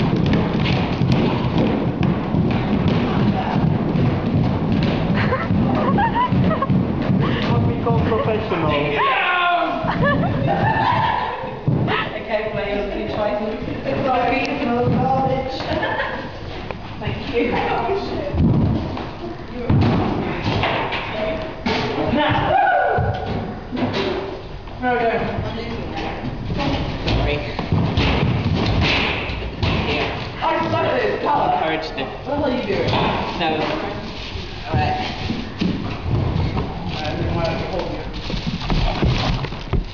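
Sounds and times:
plastic bin knocking on hard floor: 0:00.0 - 0:08.5.

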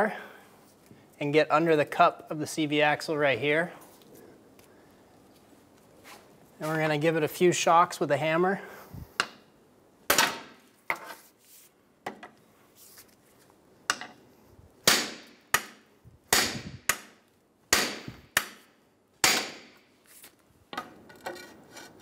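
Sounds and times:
hammer striking steel pry bar: 0:14.8 - 0:19.8.

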